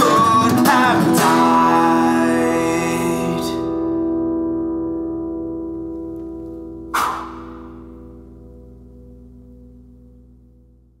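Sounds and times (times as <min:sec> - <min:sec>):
acoustic guitar chord ringing: 0:00.0 - 0:11.0
sharp strike on guitar strings: 0:06.9 - 0:08.6.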